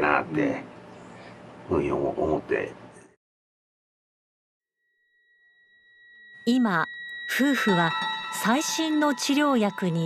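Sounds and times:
faint steady high tone: 0:04.9 - 0:10.0
soft background music: 0:06.5 - 0:10.0.

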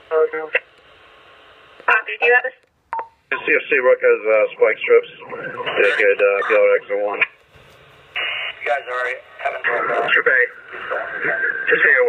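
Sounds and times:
faint radio hiss: 0:00.0 - 0:12.0
police radio voice transmissions: 0:04.2 - 0:07.3.

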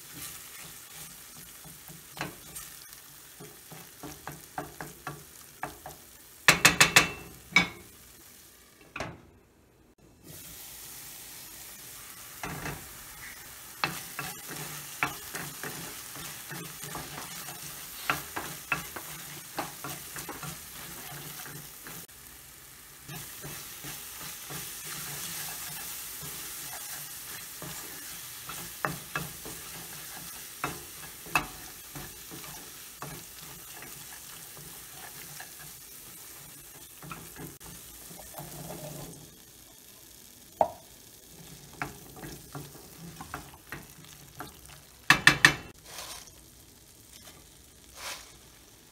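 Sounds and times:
food sizzling in a pan: 0:00.0 - 0:09.0, 0:09.9 - 0:48.9
spoon clicking on pan: 0:04.0 - 0:07.9.

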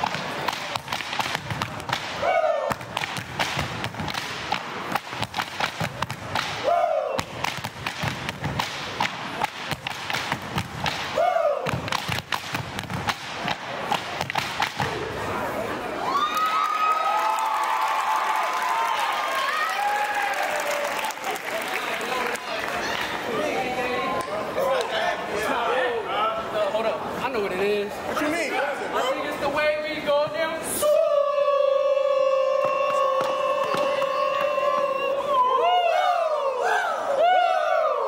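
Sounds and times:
crowd cheering and whooping: 0:15.9 - 0:23.0, 0:30.8 - 0:38.0.

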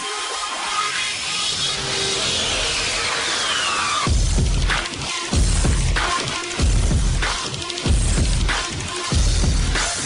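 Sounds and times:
noise sweep: 0:00.2 - 0:08.6.

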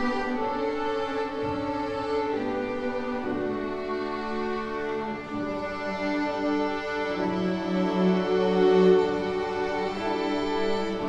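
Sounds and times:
string orchestra playing slow piece: 0:00.0 - 0:11.0.

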